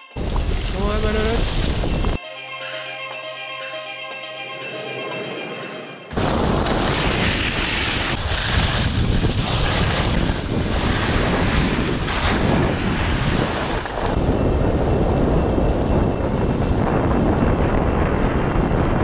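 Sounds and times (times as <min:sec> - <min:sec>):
wind rushing over microphone: 0:00.2 - 0:02.2, 0:06.1 - 0:19.0.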